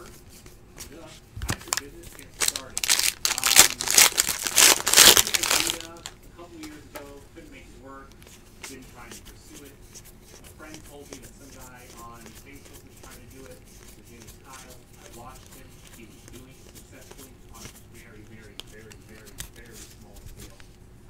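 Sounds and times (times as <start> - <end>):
trading cards flipping: 0.4 - 6.1, 10.3 - 20.7.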